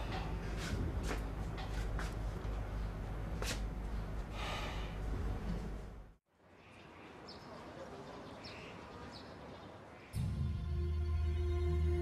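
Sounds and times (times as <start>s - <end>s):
steady low hum: 0.0s - 6.2s
breathy exhale: 4.3s - 5.1s.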